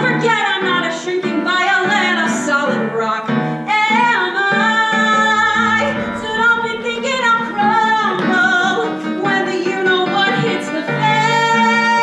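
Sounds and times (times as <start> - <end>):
instrumental accompaniment: 4.3 - 9.8.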